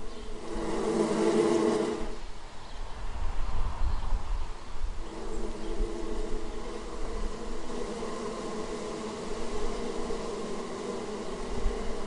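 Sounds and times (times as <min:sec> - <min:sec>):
bee buzzing in flight: 0:00.0 - 0:02.3, 0:04.9 - 0:12.0
low microphone rumble: 0:03.2 - 0:12.0.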